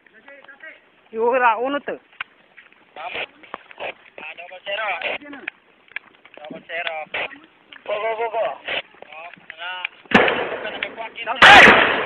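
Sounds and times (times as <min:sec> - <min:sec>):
gunshots with echo: 0:10.1 - 0:12.0.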